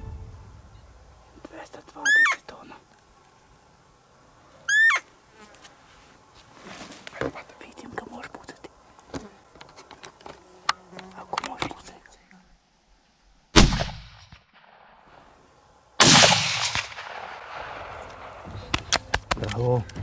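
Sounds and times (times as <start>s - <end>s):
high-pitched deer calls from caller: 2.0s - 2.4s, 4.7s - 5.1s
faint clicks and rustles: 5.1s - 12.4s.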